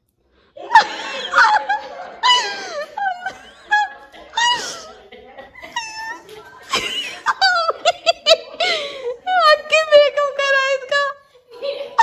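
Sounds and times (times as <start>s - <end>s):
woman squealing laughter: 0.7s - 5.0s.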